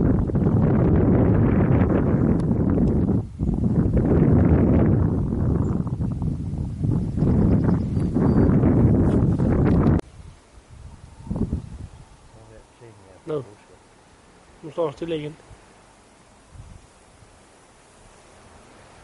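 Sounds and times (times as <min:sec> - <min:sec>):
wind buffeting microphone: 0:00.0 - 0:13.1, 0:14.8 - 0:19.0.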